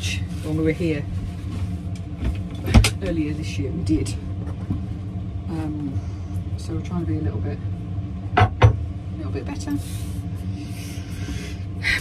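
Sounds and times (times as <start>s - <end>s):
small electric fan humming: 0.0s - 12.0s.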